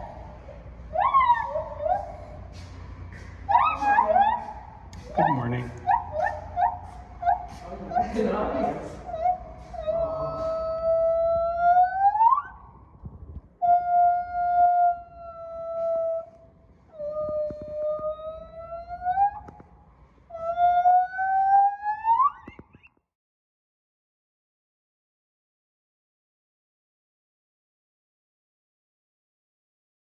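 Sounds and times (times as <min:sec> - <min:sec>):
gibbon hooting: 0:00.0 - 0:02.7, 0:03.4 - 0:12.7, 0:13.6 - 0:19.6, 0:20.3 - 0:22.9.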